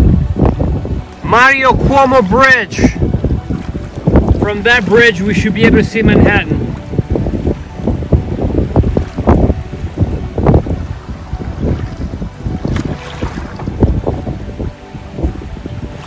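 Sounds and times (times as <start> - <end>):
choppy river water: 0.0 - 16.0
wind buffeting microphone: 0.0 - 16.0.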